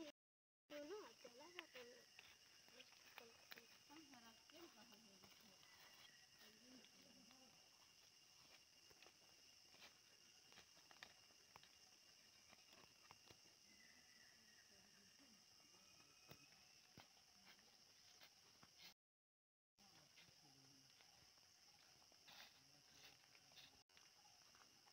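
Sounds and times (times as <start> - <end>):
high-pitched insect drone: 0.8 - 18.8.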